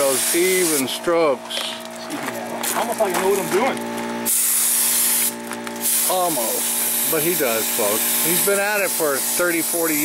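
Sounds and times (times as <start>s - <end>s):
paint spray gun hissing: 0.0s - 0.9s, 4.3s - 10.0s.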